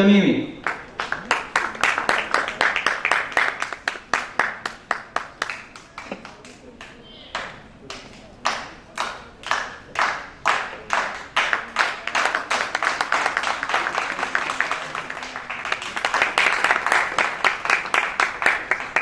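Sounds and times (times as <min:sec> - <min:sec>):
audience clapping in time: 0:00.6 - 0:19.0.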